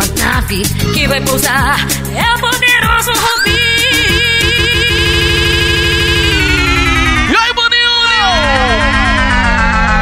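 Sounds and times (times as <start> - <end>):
electronic dance music: 2.6 - 10.0
siren-like synth sweep: 3.4 - 10.0.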